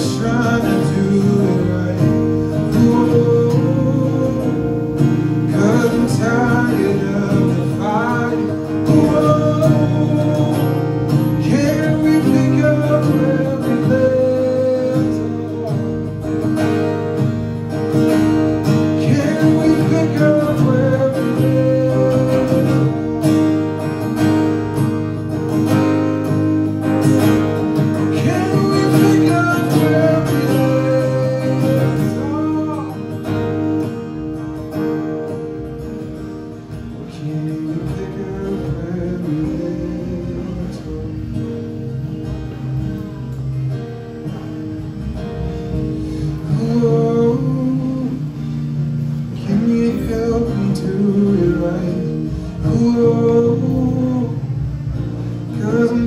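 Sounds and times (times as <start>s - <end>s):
man singing: 0.0s - 17.2s, 17.8s - 23.4s, 27.5s - 33.8s, 36.0s - 42.0s, 46.0s - 56.0s
acoustic guitar strumming: 0.0s - 56.0s.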